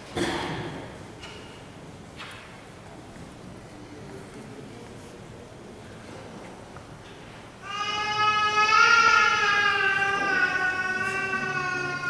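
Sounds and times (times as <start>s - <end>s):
low church room murmur: 0.0s - 12.0s.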